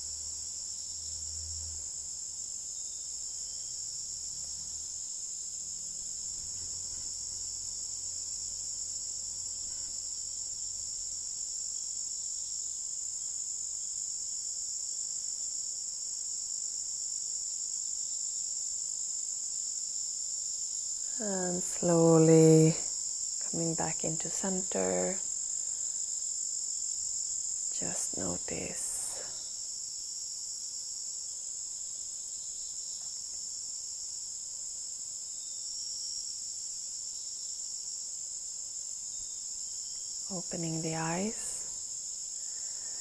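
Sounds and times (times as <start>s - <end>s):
insects chirring: 0.0s - 43.0s.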